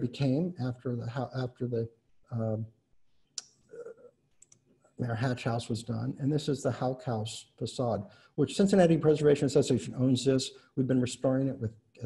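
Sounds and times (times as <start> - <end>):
small clicks: 4.3 - 4.7.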